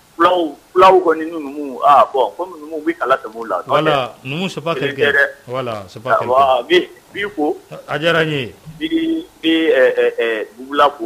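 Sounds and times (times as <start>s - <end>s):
man talking on radio: 3.0s - 9.3s.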